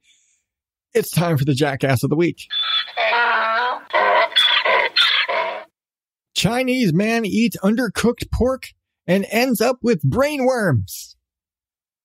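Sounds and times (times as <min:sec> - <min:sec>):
donkey braying: 0:02.5 - 0:05.6.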